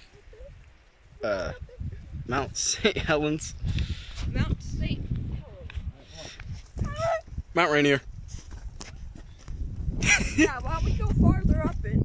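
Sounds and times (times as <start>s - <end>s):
wind on microphone: 0.0s - 12.0s.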